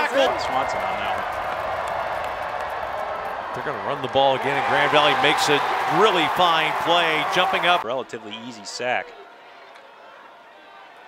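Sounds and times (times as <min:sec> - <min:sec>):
stadium crowd voices: 0:00.0 - 0:11.0.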